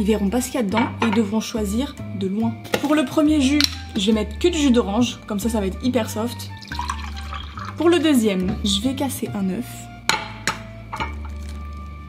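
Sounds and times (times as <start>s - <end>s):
egg cracking on ceramic mug: 3.6s - 4.0s, 6.5s - 7.8s.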